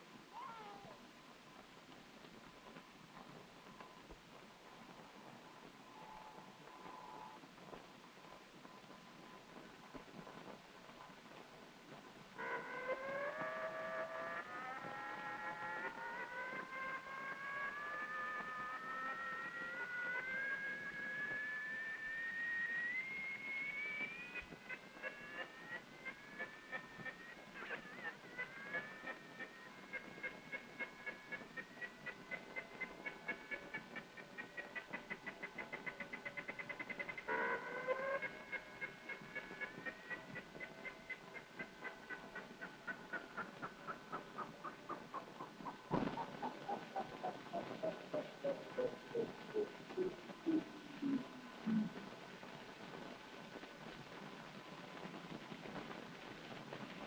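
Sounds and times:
electronic rising whine: 12.4s - 32.4s
falling glide of beeps: 12.9s - 32.3s
rapid pulsing electronic beeps: 17.6s - 33.6s.

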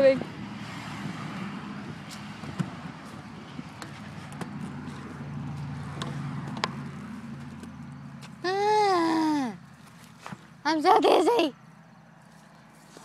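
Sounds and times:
tire swing low rumble: 0.0s - 10.7s.

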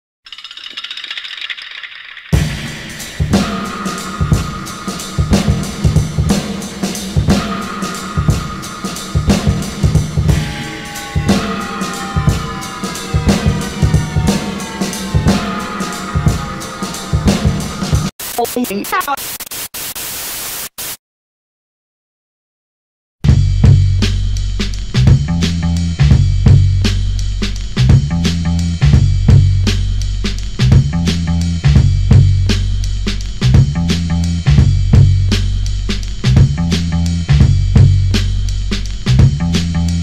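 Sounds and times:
fast rattling clicks: 0.3s - 2.4s
television static hiss: 18.2s - 21.0s.

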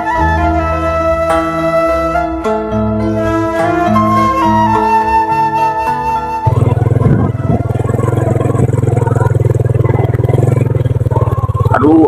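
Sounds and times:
flute music: 0.0s - 12.0s
small engine running: 6.5s - 12.0s.

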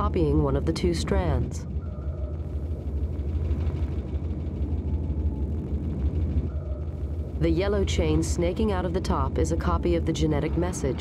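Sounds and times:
low mechanical rumble: 0.0s - 11.0s.

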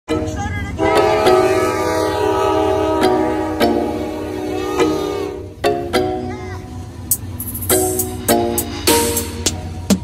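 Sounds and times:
locomotive air horn chord: 0.7s - 5.6s.

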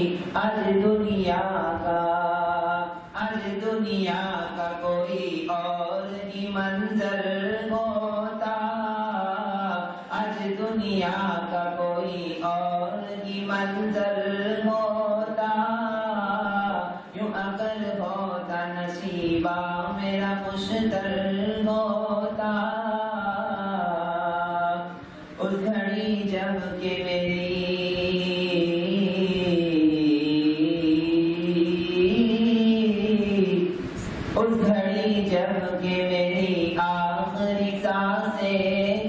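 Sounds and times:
man chanting: 0.0s - 39.0s.

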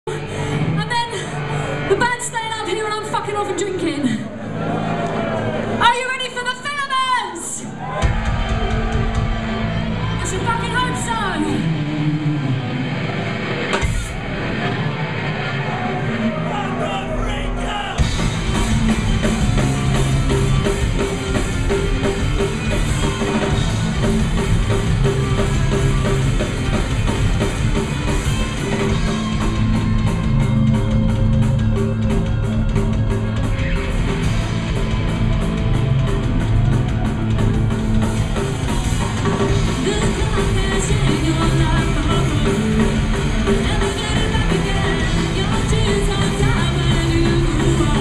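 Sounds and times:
punk rock band playing: 0.1s - 48.0s.

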